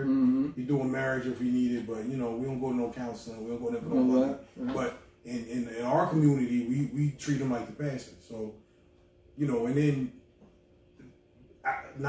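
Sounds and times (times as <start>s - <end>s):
man saying uh: 3.4s - 8.5s.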